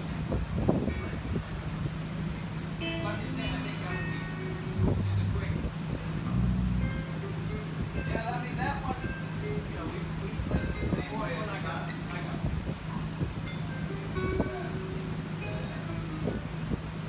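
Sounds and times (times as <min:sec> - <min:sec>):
electric guitar notes: 0:02.3 - 0:08.2, 0:13.0 - 0:16.7
sustained low bass note: 0:02.8 - 0:07.5.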